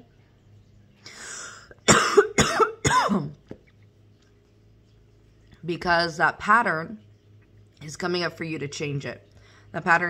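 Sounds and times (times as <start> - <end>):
woman coughing: 1.8 - 3.4.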